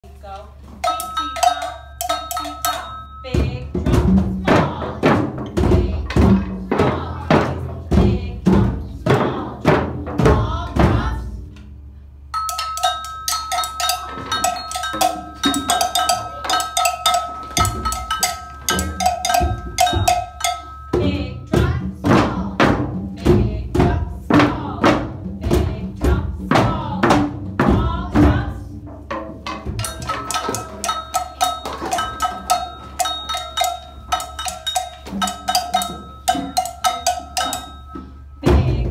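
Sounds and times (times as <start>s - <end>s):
steady ringing tone: 0.8s - 3.5s, 12.3s - 21.6s, 29.8s - 38.6s
heavy slow drum beats: 12.3s - 38.9s.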